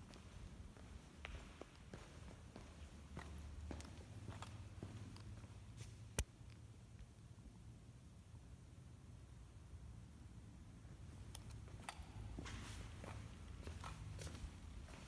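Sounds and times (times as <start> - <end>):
faint footsteps and scuffs: 0.0 - 6.2, 11.5 - 15.0.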